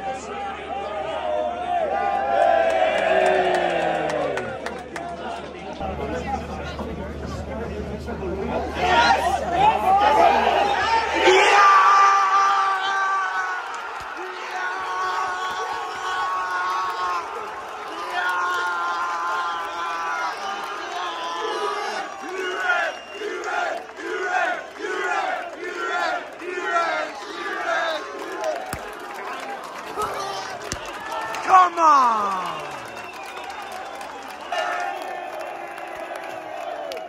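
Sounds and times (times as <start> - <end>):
football crowd cheering: 0.0 - 6.0, 8.4 - 37.0
crowd rhythmic chanting: 20.0 - 30.9
crowd singing a chant: 21.8 - 28.3.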